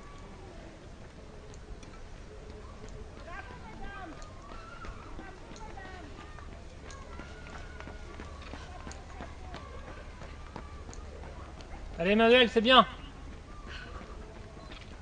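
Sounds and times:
distant voices talking and calling: 0.0 - 15.0.

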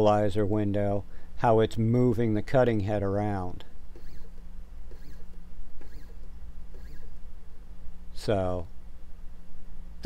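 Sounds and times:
steady low hum: 0.0 - 10.0
stepper motor whine: 3.9 - 7.2.

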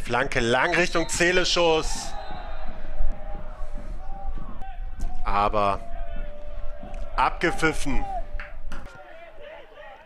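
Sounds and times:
commentator speaking: 0.0 - 2.1, 7.2 - 8.2.

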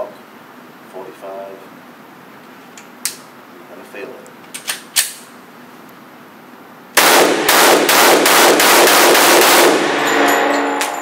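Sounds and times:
steady background hum: 0.0 - 11.0
pistol shot: 7.0 - 10.0.

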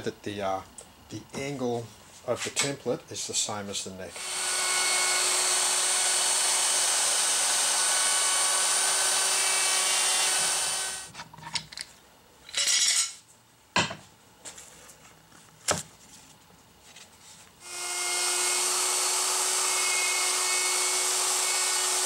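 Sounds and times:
wood router whining: 4.1 - 11.1, 17.6 - 22.0.

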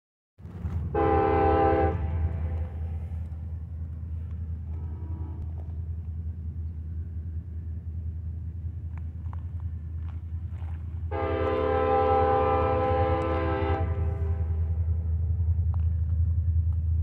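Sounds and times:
steady low rumble: 0.4 - 17.0
distant locomotive air horn: 0.9 - 3.3, 4.6 - 5.6, 11.1 - 14.9.

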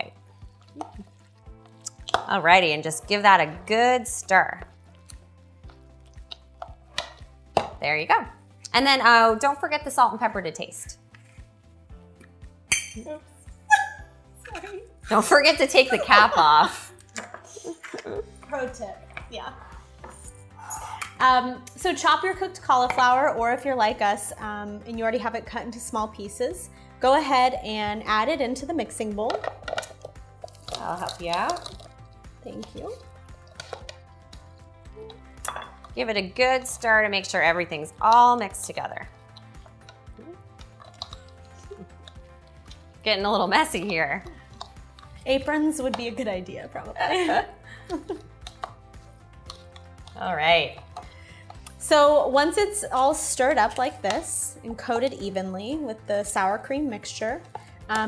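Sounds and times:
soft background music: 0.0 - 58.0.

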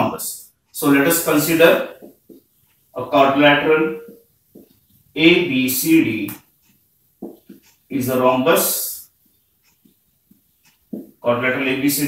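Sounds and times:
marker scratching on whiteboard: 0.8 - 12.0.

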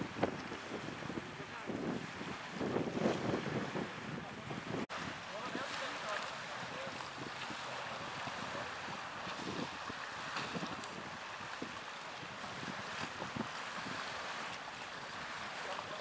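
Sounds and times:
choppy river water: 0.0 - 16.0
wind buffeting microphone: 0.0 - 16.0.

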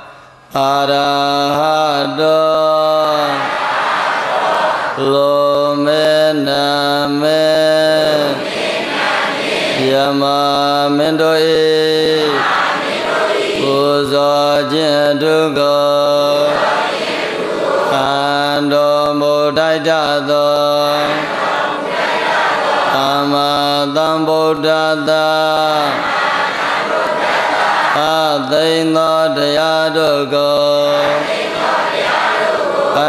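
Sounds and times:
man chanting: 0.0 - 3.6, 5.0 - 8.5, 9.8 - 12.4, 13.6 - 16.7, 17.8 - 21.4, 22.9 - 26.1, 27.9 - 31.6.

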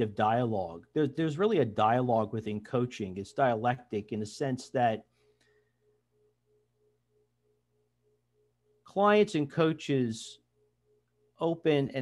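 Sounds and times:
faint low hum: 0.0 - 12.0
faint pulsing tone: 4.8 - 12.0.

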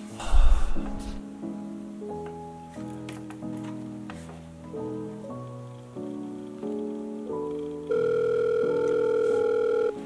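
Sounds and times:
faint background music: 0.0 - 10.0
phone ringback tone: 7.5 - 10.0.

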